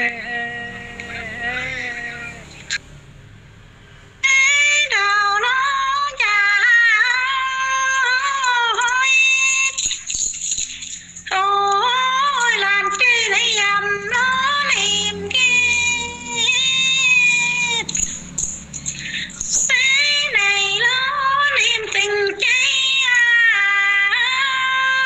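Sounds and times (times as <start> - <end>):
woman singing folk song: 4.2 - 9.8, 11.3 - 18.0, 19.0 - 25.0.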